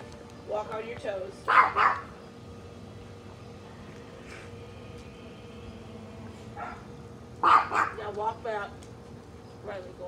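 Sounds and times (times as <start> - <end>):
small dog barking: 1.5 - 2.1, 6.6 - 6.8, 7.4 - 8.0.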